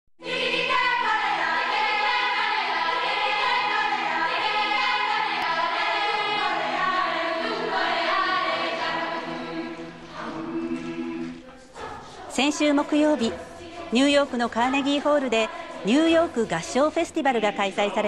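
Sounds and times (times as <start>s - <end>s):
choir singing: 0.2s - 18.0s.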